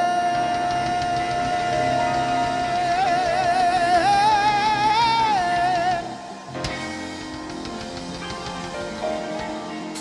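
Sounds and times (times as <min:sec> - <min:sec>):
church band music: 0:00.0 - 0:10.0.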